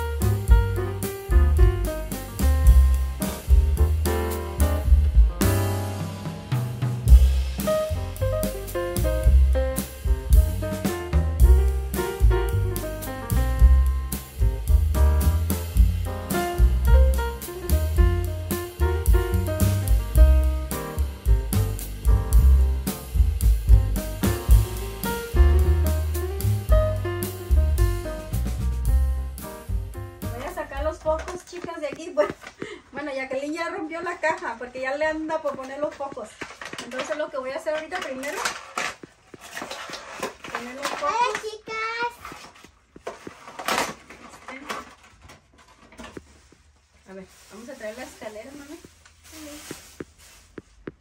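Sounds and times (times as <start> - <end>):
bass line: 0.0 - 31.2
light melody: 0.0 - 31.4
drum kit: 0.0 - 32.8
person speaking: 30.2 - 38.4, 47.1 - 50.1.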